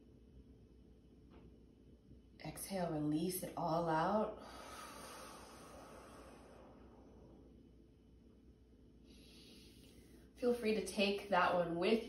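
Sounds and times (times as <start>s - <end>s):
faint exhaled breath: 4.4s - 7.4s, 9.0s - 10.3s.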